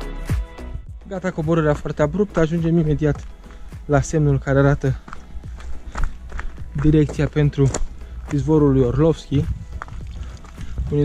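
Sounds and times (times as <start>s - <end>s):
footsteps crunching on gravel: 1.3s - 11.0s.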